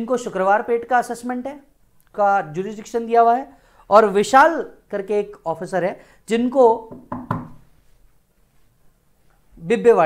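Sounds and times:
knock: 6.9s - 7.6s.

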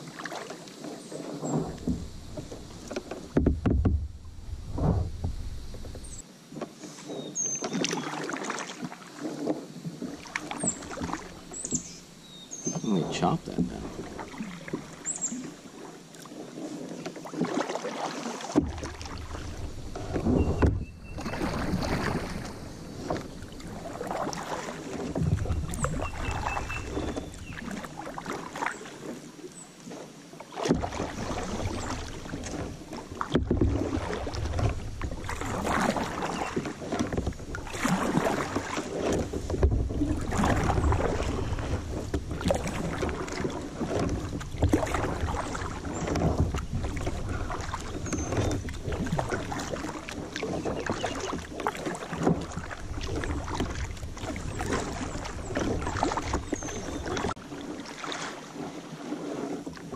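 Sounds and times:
paddle splashing in water: 0.0s - 59.9s
wind buffeting microphone: 1.0s - 6.2s, 18.7s - 27.6s.

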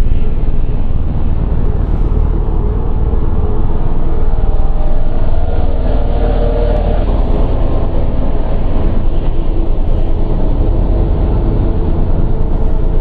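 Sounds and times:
dark electronic drone music: 0.0s - 13.0s.

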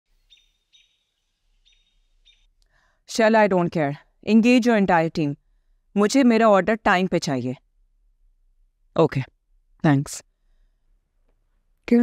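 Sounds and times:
faint bird chirps: 0.2s - 2.6s.

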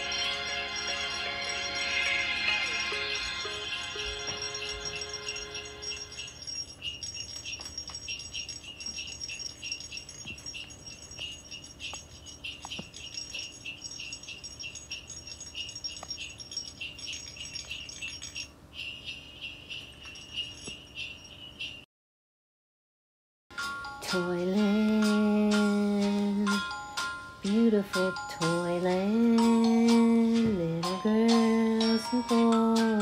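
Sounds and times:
jingle bells shaking: 0.0s - 21.9s, 23.6s - 33.0s.

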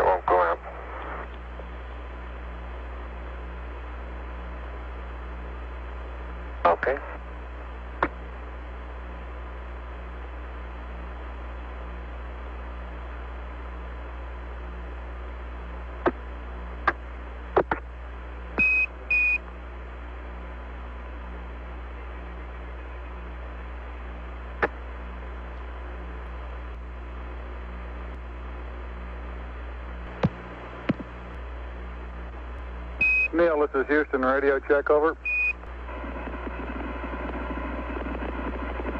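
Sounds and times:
low hum: 0.0s - 38.9s
radio static hiss: 0.0s - 38.9s.

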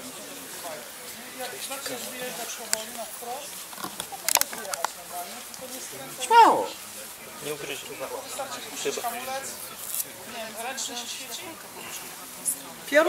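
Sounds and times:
people talking faintly: 0.0s - 13.0s.

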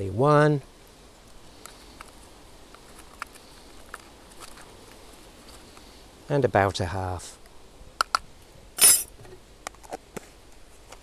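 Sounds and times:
spoon scraping: 8.8s - 9.1s.

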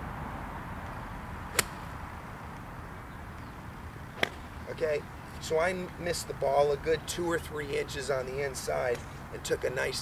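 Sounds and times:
golf club striking turf: 1.5s - 2.0s, 4.2s - 4.5s.

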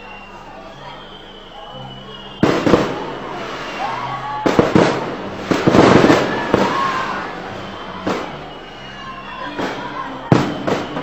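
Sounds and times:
fireworks bangs and crackling: 1.2s - 11.0s.

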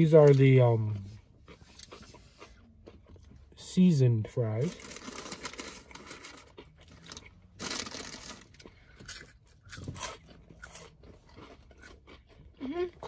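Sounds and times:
crispy fries being chewed: 0.0s - 3.8s, 4.6s - 13.0s
paper bag rustling: 7.6s - 8.4s.

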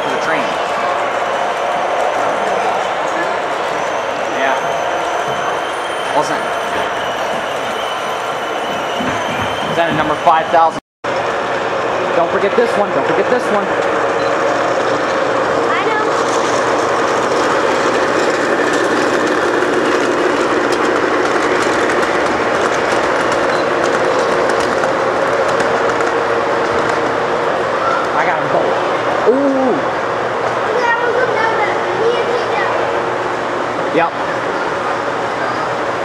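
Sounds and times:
metal wheels rumbling on rails: 0.0s - 36.0s.

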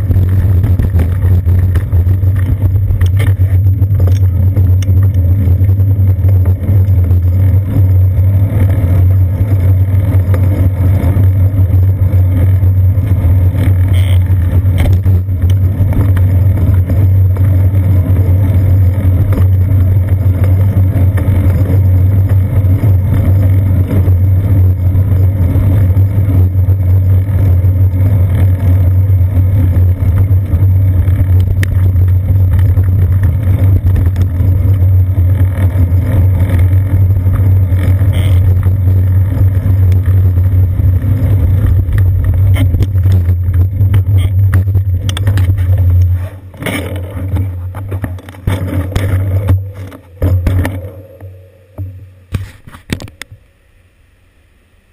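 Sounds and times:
wind on microphone: 0.0s - 51.0s
road vibration rumble: 0.0s - 54.9s.

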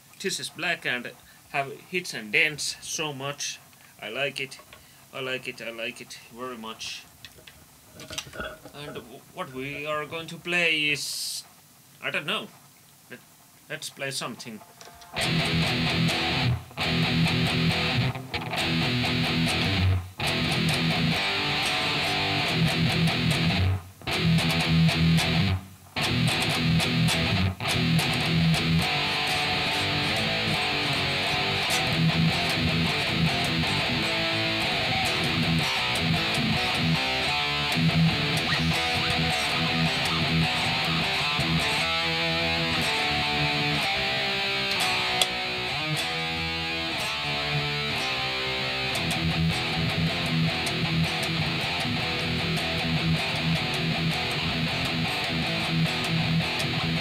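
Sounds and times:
electric guitar riffs: 14.5s - 57.0s.

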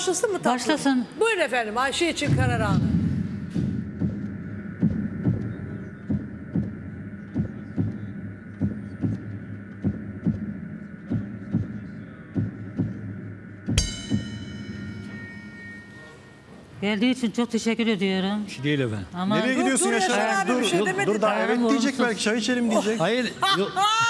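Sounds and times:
steady drone: 2.0s - 17.1s
heartbeat-style double thump: 2.2s - 15.1s
bright ringing hit: 13.7s - 16.8s.

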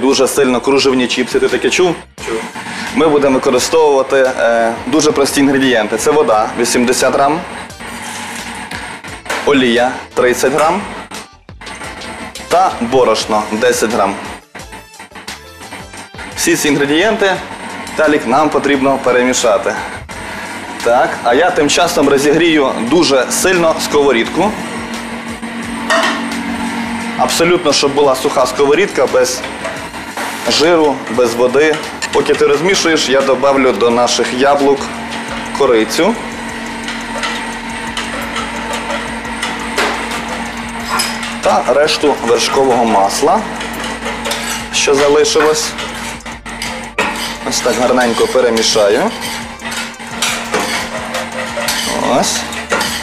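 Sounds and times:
wire whisk beating batter in bowl: 0.0s - 53.0s
steady low hum: 22.6s - 53.0s
spoon stirring in saucepan: 29.4s - 53.0s.

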